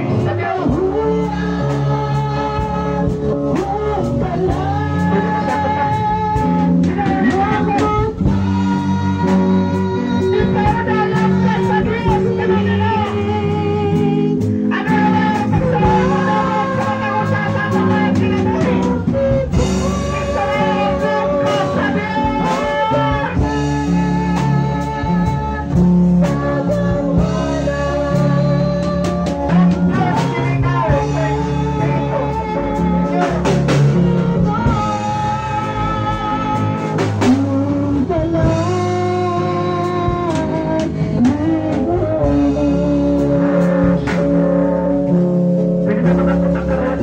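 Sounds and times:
live band music: 0.0s - 47.0s
woman singing into microphone: 0.0s - 47.0s
drum kit hits: 14.4s - 47.0s.

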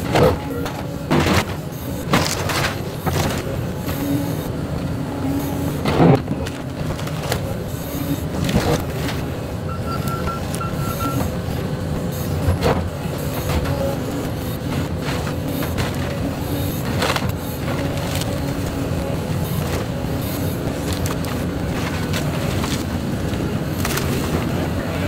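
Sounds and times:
excavator engine running: 0.0s - 25.0s.

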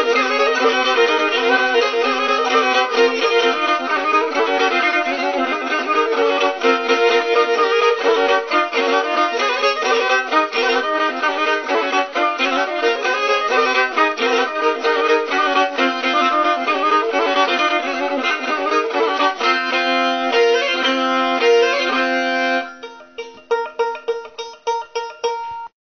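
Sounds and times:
bowed string instrument: 0.0s - 25.7s.

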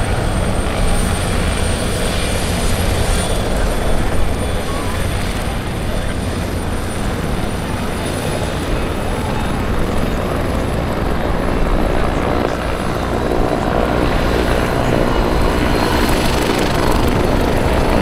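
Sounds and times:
airship engines and propellers: 0.0s - 18.0s.

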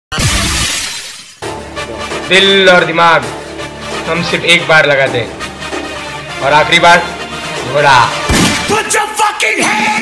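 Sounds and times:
crash sound effect: 0.1s - 1.4s.

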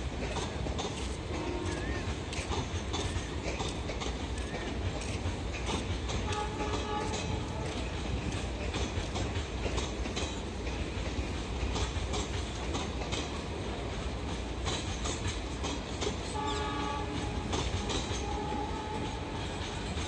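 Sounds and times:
train rumbling past: 0.0s - 20.0s
train horn: 1.3s - 2.0s, 6.2s - 7.9s, 16.3s - 19.9s.

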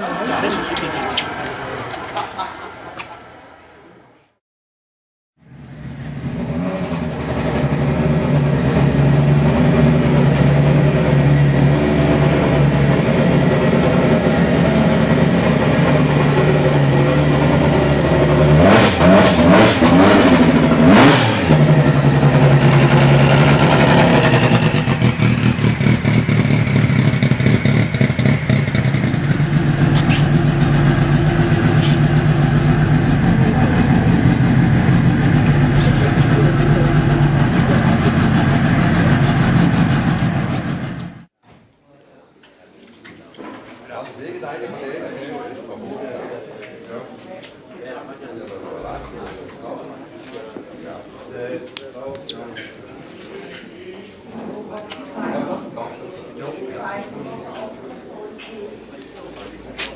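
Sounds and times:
car engine idling and revving: 0.0s - 2.2s, 5.4s - 41.3s.

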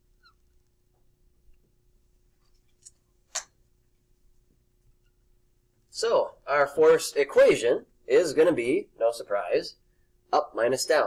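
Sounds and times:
faint room hum: 0.0s - 11.0s
dry-erase marker squeak: 0.2s - 0.5s.

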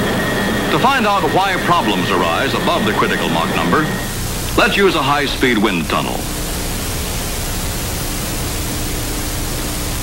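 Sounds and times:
faint steady hum: 0.0s - 10.0s
film soundtrack hiss: 0.0s - 10.0s.

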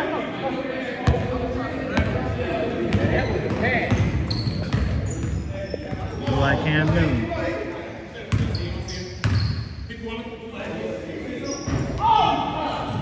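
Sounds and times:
players' voices: 0.0s - 13.0s.

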